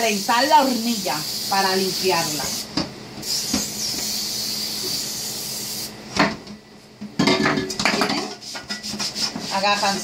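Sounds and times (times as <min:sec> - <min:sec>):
aerosol can spraying: 0:00.1 - 0:05.9
brush scrubbing pot in sink: 0:08.1 - 0:10.0.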